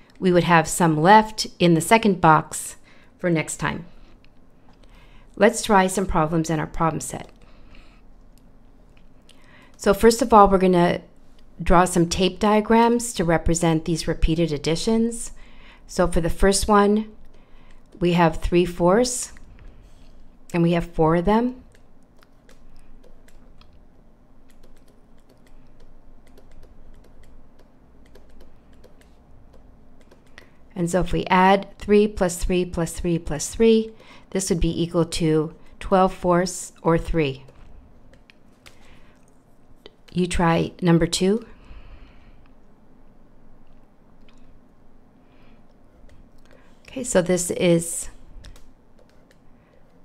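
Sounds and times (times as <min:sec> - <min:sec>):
faint low hum: 0:00.0 - 0:50.0
speech: 0:00.2 - 0:03.9, 0:05.4 - 0:07.4, 0:09.8 - 0:17.2, 0:18.0 - 0:19.4, 0:20.5 - 0:21.7, 0:30.8 - 0:37.5, 0:40.1 - 0:41.5, 0:46.9 - 0:48.2
stylus clicks and taps: 0:24.4 - 0:30.5, 0:37.4 - 0:40.2, 0:48.4 - 0:50.0.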